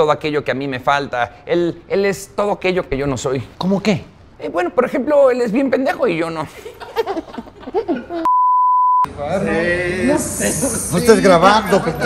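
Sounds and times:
loud test tone beep: 8.3 - 9.1.

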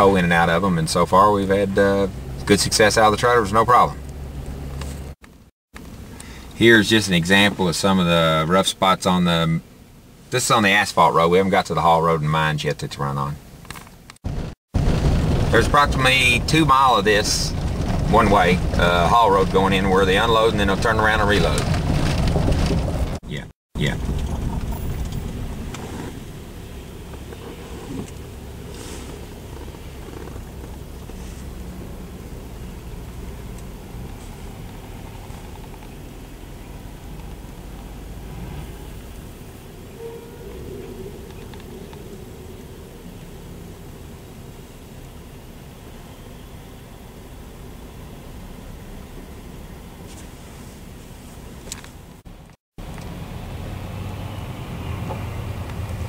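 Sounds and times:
truck driving on road: 0.0 - 5.9, 14.3 - 23.2, 23.8 - 50.6, 51.4 - 56.0.

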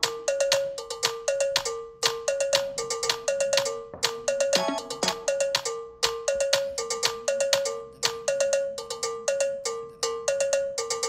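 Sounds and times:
looped electronic music: 0.0 - 9.6.

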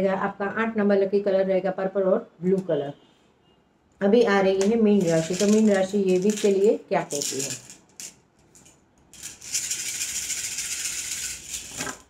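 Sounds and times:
shells rattling in hands: 5.0 - 12.0.

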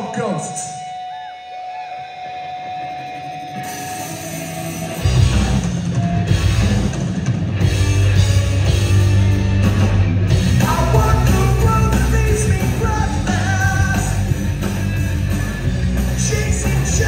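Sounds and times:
drums: 0.0 - 17.0
electric guitars: 0.0 - 17.0
live rock band playing: 0.0 - 17.0.

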